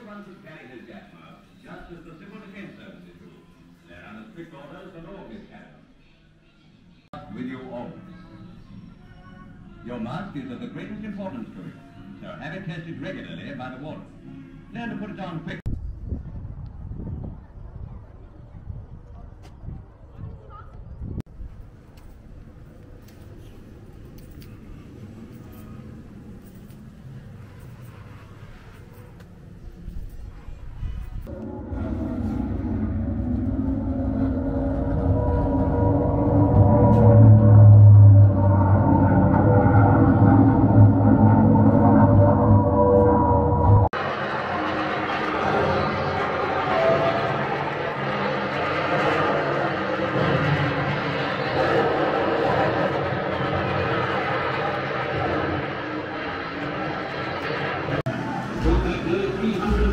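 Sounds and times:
low rumble with steady tones: 15.6s - 44.8s.

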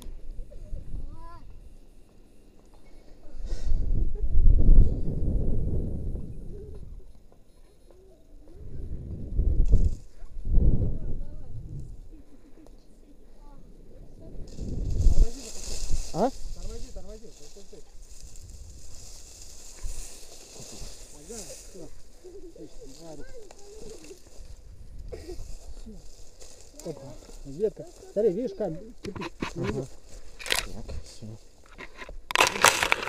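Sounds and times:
wind rushing over microphone: 3.4s - 7.1s, 8.5s - 12.2s, 13.6s - 22.2s, 24.3s - 26.2s
faint distant voices: 6.2s - 9.3s, 10.1s - 31.5s.

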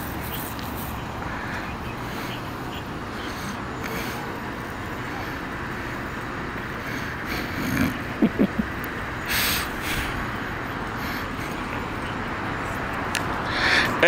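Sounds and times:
faint distant voices: 0.0s - 14.0s
low outdoor background noise: 0.0s - 14.0s.

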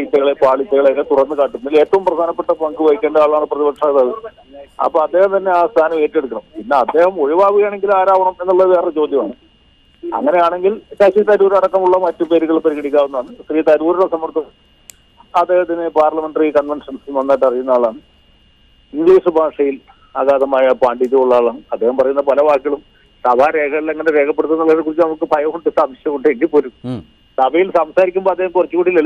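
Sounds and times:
man speaking over phone line: 0.0s - 14.6s, 15.2s - 18.0s, 18.9s - 29.0s.

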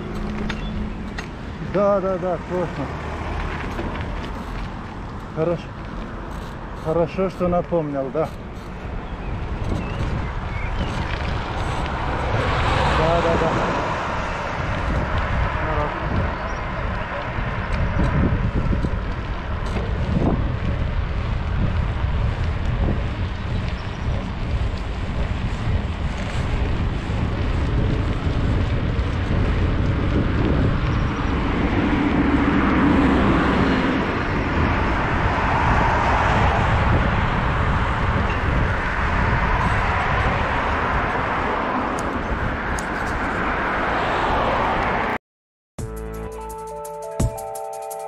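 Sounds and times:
rushing road noise: 0.0s - 45.2s
wind buffeting microphone: 0.0s - 45.2s.

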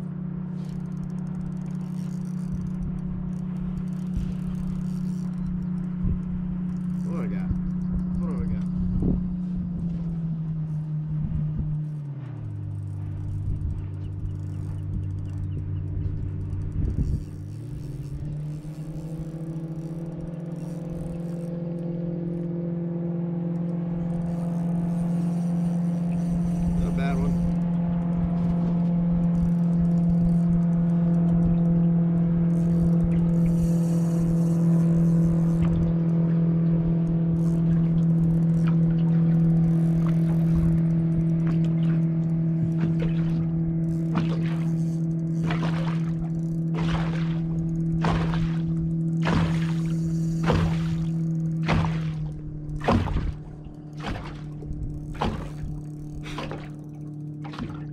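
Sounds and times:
outboard motor running: 0.0s - 57.9s.

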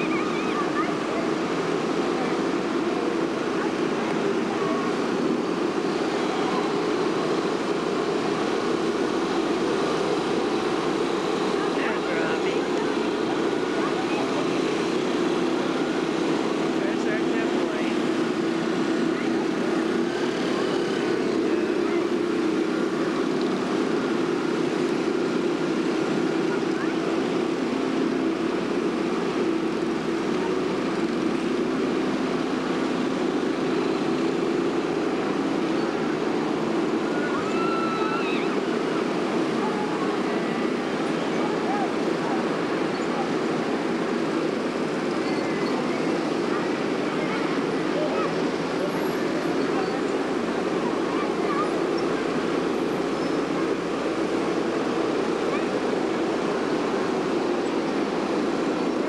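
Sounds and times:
faint voices: 0.0s - 59.0s
machinery droning: 0.0s - 59.0s.

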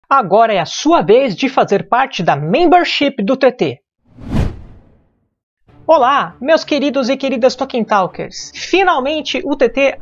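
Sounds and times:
whoosh sound effect: 4.1s - 5.2s.

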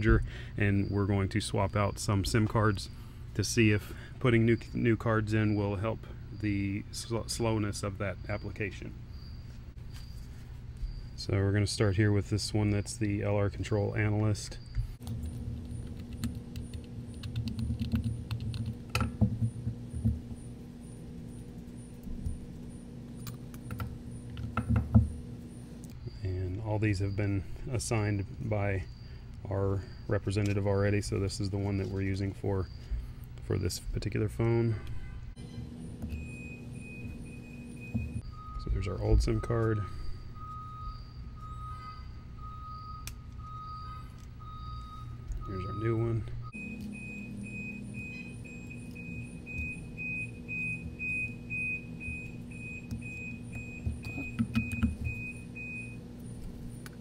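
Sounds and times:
low steady hum: 0.0s - 57.0s
electronic beeps: 35.4s - 56.9s.

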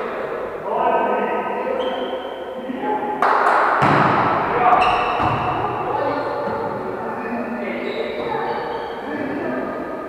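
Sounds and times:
players calling out: 4.0s - 9.9s.

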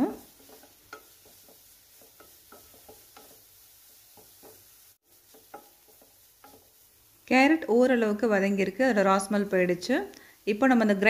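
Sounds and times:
spatula scraping and tapping in pan: 0.0s - 7.0s
faint sizzle: 0.0s - 11.0s.

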